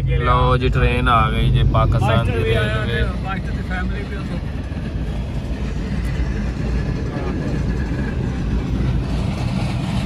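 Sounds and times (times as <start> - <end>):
car engine: 0.0 - 10.0
train rumbling past: 0.0 - 10.0.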